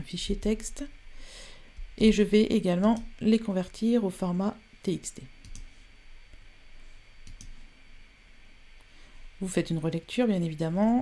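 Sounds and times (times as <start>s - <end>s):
low steady hum: 0.0s - 11.0s
computer mouse clicks: 5.4s - 5.7s, 7.2s - 7.6s.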